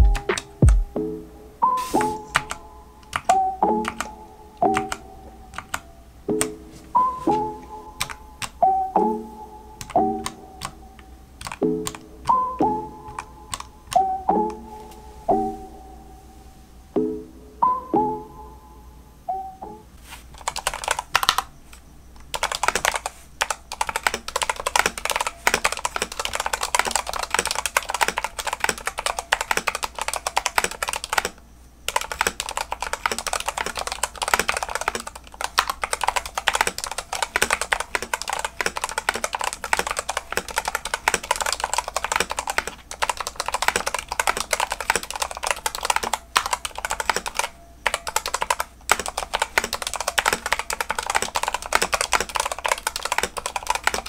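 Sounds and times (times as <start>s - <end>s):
mechanical keyboard typing: 0.0s - 0.8s, 1.8s - 5.8s, 7.2s - 8.6s, 9.8s - 10.8s, 11.4s - 14.1s, 20.4s - 54.0s.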